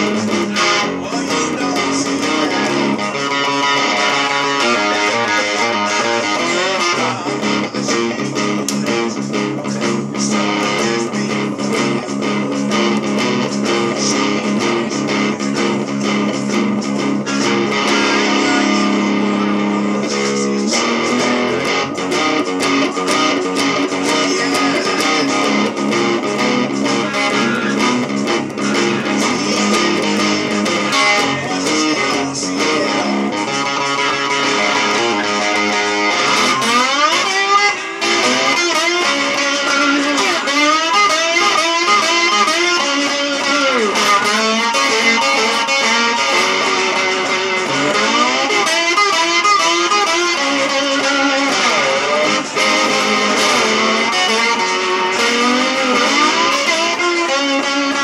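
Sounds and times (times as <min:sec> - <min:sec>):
distorted electric slide guitar: 0:00.0 - 0:58.0.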